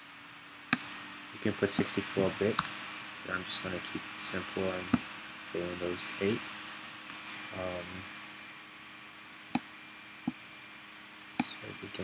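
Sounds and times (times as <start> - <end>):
faint steady hiss: 0.0 - 12.0
computer mouse click: 7.0 - 7.4.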